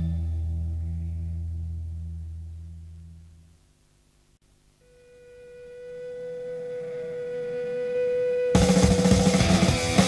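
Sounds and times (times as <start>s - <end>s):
held note with overtones: 4.8s - 10.0s.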